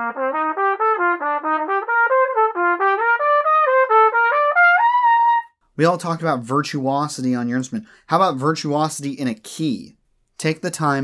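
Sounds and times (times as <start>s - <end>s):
solo trumpet playing: 0.0s - 5.6s.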